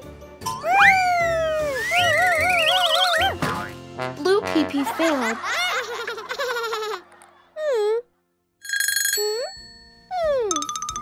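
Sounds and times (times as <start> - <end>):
whistle-like tone gliding down: 0.6 - 3.3.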